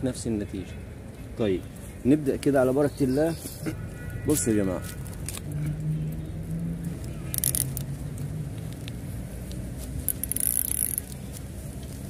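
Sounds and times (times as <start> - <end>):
low engine-like hum: 5.2 - 12.0
small clicks: 7.0 - 11.4.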